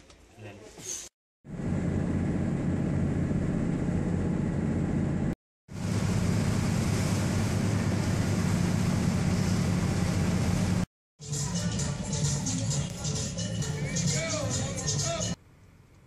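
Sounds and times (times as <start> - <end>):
ferry engine drone: 1.5 - 13.6
rushing water: 5.7 - 10.8.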